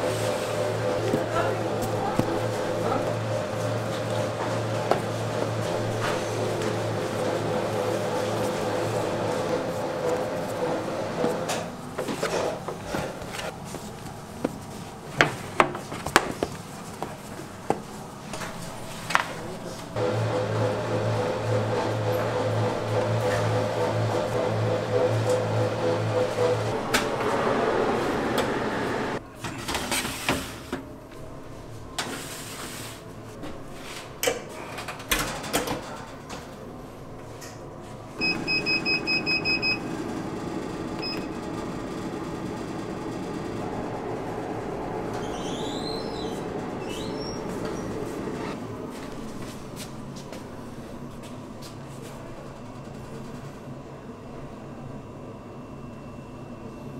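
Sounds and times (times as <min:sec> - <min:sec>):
machine hum: 0:00.0 - 0:29.4, 0:33.0 - 0:56.9
oven humming: 0:00.0 - 0:56.9.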